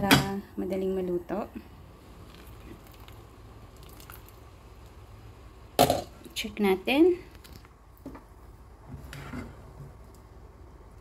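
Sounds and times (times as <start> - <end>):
beans bubbling in a pot: 0.6 - 11.0.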